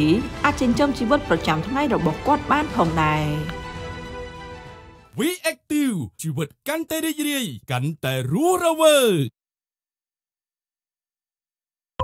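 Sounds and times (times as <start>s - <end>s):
music: 0.0s - 5.2s.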